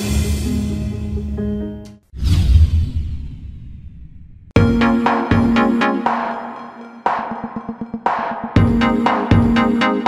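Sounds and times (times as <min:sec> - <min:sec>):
whoosh with deep rumble: 0:02.2 - 0:04.6.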